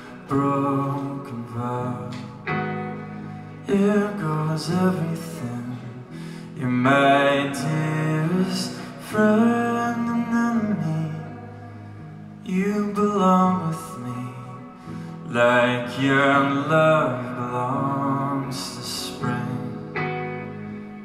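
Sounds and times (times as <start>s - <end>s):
guitar accompaniment: 0.0s - 21.0s.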